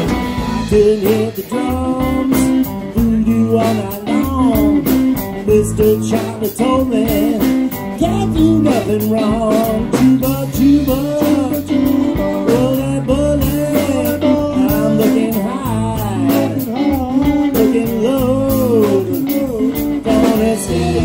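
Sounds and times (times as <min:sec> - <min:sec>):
drums: 0:00.0 - 0:21.0
electric bass: 0:00.0 - 0:21.0
electric guitar lead: 0:00.0 - 0:21.0.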